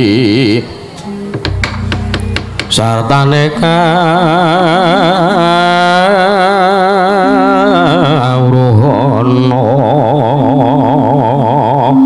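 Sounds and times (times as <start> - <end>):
man singing long vibrato note: 2.7 - 12.0.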